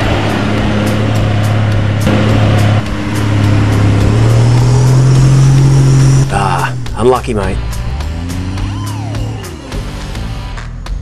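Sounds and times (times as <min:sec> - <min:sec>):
engine revving hard under load: 0:00.0 - 0:10.3.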